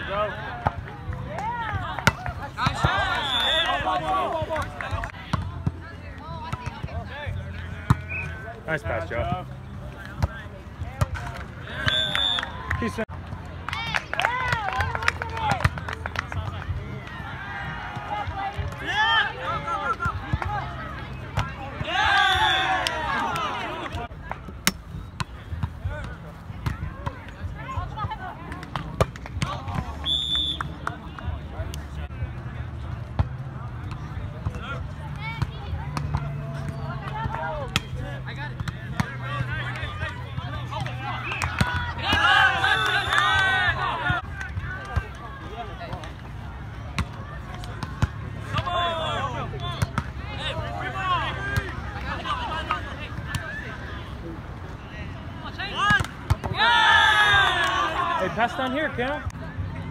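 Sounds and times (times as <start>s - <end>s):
players shouting: 0.0s - 13.1s, 13.7s - 24.4s, 25.2s - 59.9s.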